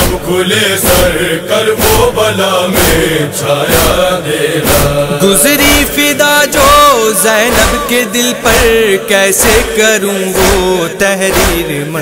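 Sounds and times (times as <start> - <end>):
chorus of voices chanting: 0.0 - 12.0
steady beat: 0.0 - 12.0.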